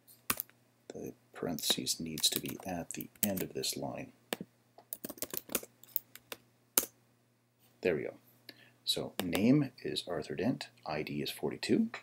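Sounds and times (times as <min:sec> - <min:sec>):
computer keyboard typing: 0:01.6 - 0:03.5, 0:04.9 - 0:06.4.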